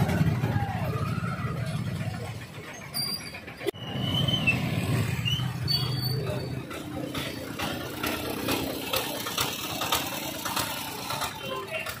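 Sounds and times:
motorbike and vehicle engines: 0:00.0 - 0:12.0
street noise: 0:00.0 - 0:12.0.

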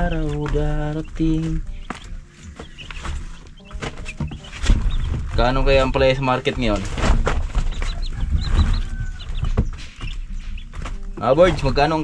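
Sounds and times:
high chirping bird calls: 0:00.0 - 0:06.1, 0:07.7 - 0:11.9.

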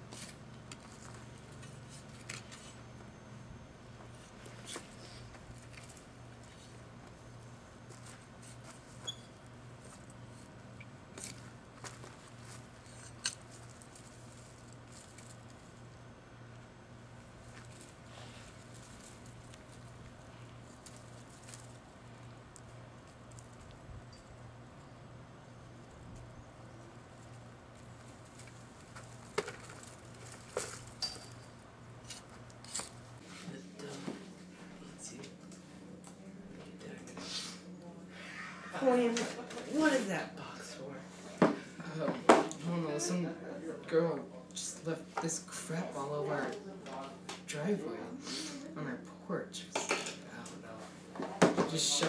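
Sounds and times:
low steady hum: 0:00.0 - 0:52.0
leaves rustling: 0:11.2 - 0:16.0, 0:17.1 - 0:23.8.

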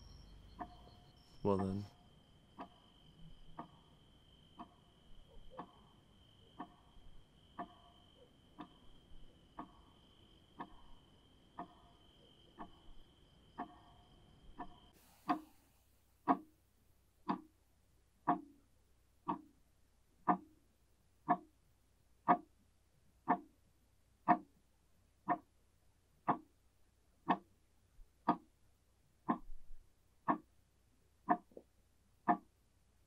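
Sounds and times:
clock ticking: 0:00.0 - 0:01.9, 0:02.6 - 0:15.6, 0:16.2 - 0:16.5, 0:17.2 - 0:17.6, 0:18.2 - 0:18.6, 0:19.2 - 0:19.6, 0:20.2 - 0:21.6, 0:22.2 - 0:23.6, 0:24.2 - 0:25.6, 0:26.2 - 0:28.6, 0:29.2 - 0:32.7.

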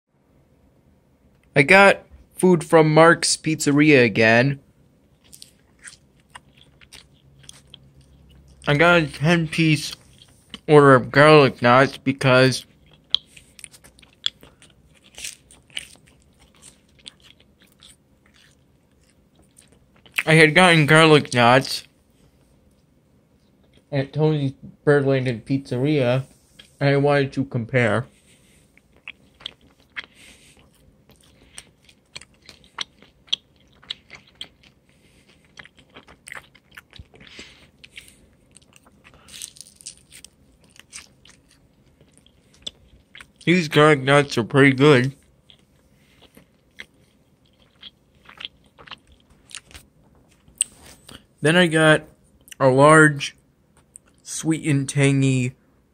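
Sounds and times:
person chewing food: 0:05.0 - 0:12.0, 0:12.6 - 0:20.7, 0:21.8 - 0:23.9, 0:26.3 - 0:26.8, 0:28.1 - 0:44.3, 0:45.0 - 0:51.4, 0:53.7 - 0:54.2.

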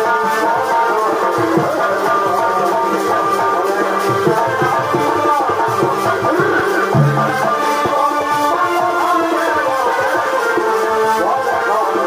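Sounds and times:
quick drum strokes: 0:00.1 - 0:10.2
sustained wavering melody: 0:01.9 - 0:09.0.

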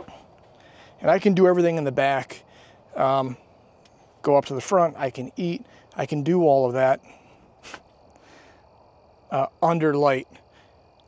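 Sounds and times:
sharp intake of breath: 0:00.0 - 0:01.0, 0:02.5 - 0:02.9, 0:07.0 - 0:08.8
faint background hiss: 0:00.0 - 0:11.0.

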